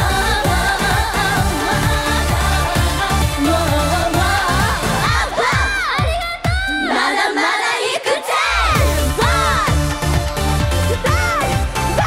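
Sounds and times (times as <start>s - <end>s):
steady kick-drum beat: 0.0s - 7.0s, 8.8s - 12.0s
swooping high vocal or synth glides: 0.0s - 10.0s
up-tempo pop song performed live: 0.0s - 12.0s.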